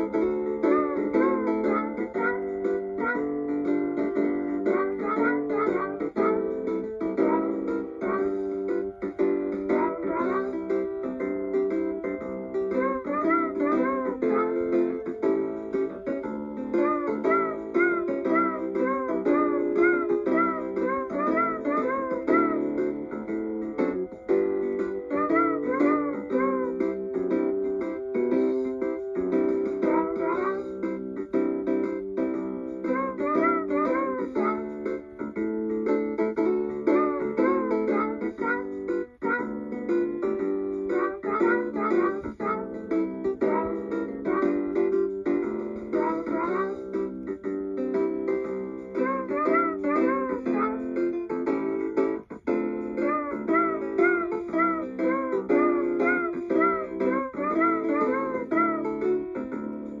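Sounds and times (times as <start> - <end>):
toy guitar playing a tune: 0.0 - 26.9, 48.2 - 60.0.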